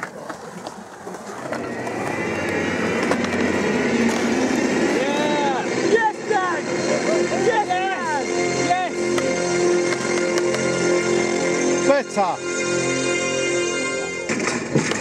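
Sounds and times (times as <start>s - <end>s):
steady background noise: 0.0s - 15.0s
people shouting and calling out: 4.9s - 9.6s.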